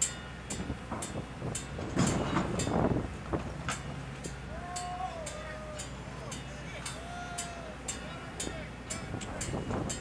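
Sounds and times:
low hum of ship machinery: 0.0 - 10.0.

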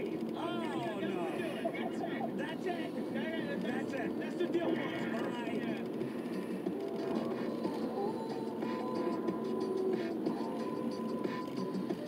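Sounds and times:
music from car radio: 0.0 - 12.0.

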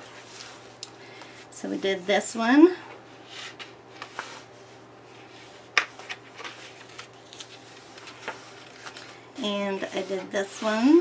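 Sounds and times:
paper rustling: 5.9 - 9.2.

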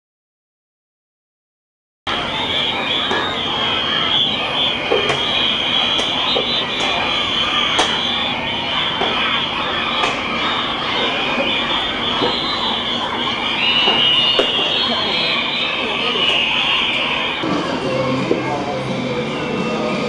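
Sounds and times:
children shouting and chattering: 2.1 - 20.0.

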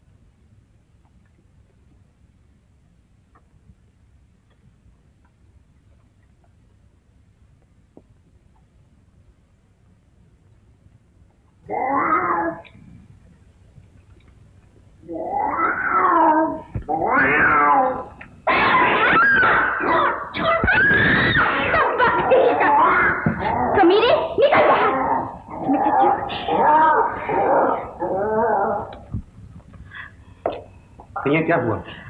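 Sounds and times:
cat meow: 15.1 - 21.6.

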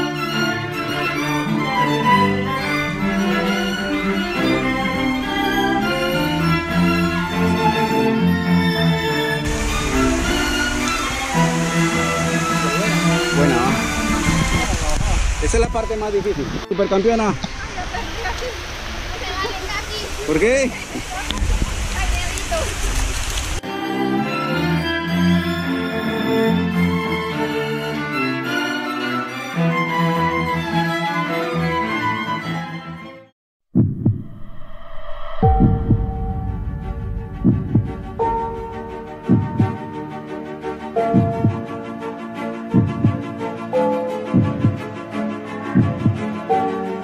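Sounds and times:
bowed strings melody: 0.0 - 19.6, 23.6 - 33.3, 35.4 - 47.0
outdoor rushing rumble: 34.0 - 39.9.

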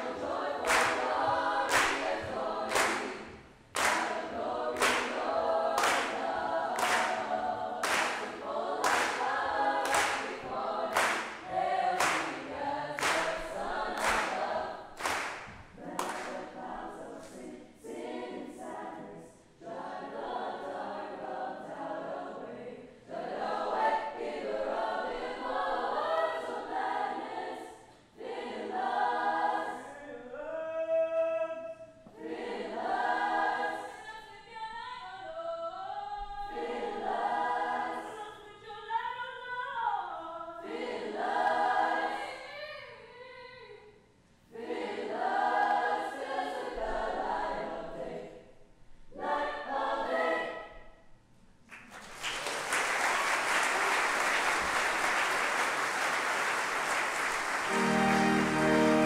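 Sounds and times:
choir of young voices singing: 0.0 - 30.4, 31.9 - 43.8, 44.5 - 51.0, 57.5 - 59.0.

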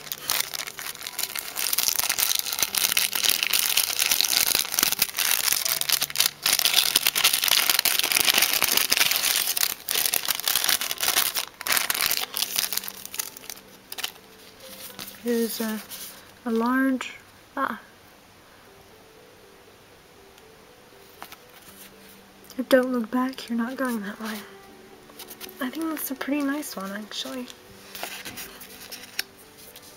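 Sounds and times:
plastic wrapper crinkling: 0.0 - 16.3, 25.1 - 29.9.

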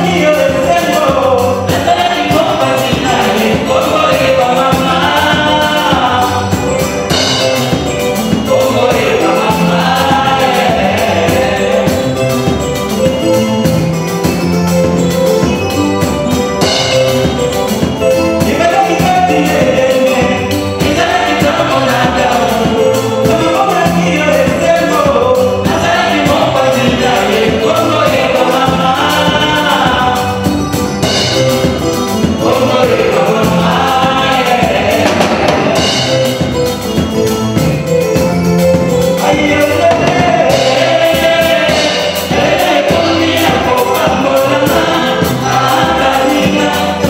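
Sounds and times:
bass line and beat: 0.0 - 47.0
gospel group singing in harmony: 0.0 - 47.0
live band with drum kit: 0.0 - 47.0.

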